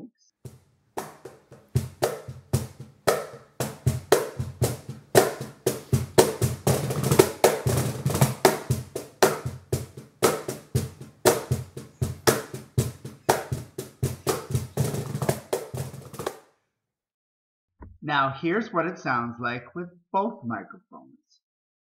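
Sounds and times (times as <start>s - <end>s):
cajon played by hand: 0.5s - 16.4s.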